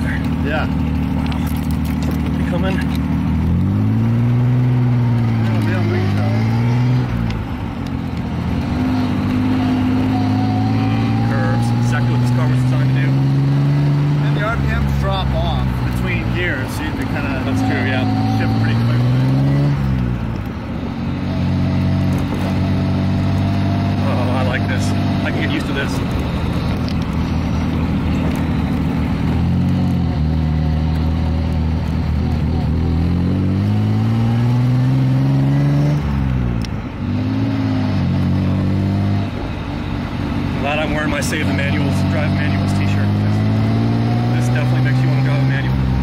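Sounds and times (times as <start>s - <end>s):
car engine and exhaust accelerating: 0.0s - 46.0s.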